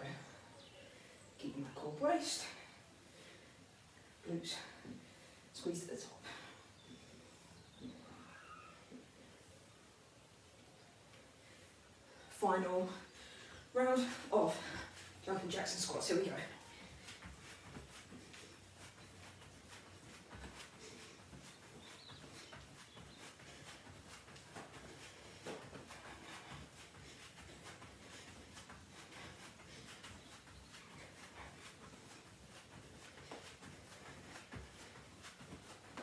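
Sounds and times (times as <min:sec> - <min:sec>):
feet thudding on exercise mat: 0:16.4 - 0:36.0.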